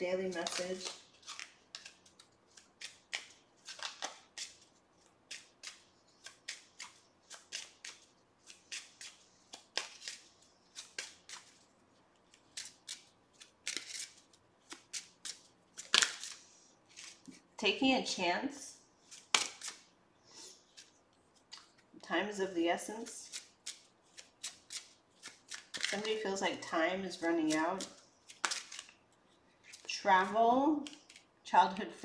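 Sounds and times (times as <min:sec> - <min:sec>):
cards being shuffled: 0:00.2 - 0:17.4, 0:19.1 - 0:19.9, 0:23.2 - 0:26.2, 0:27.4 - 0:31.3.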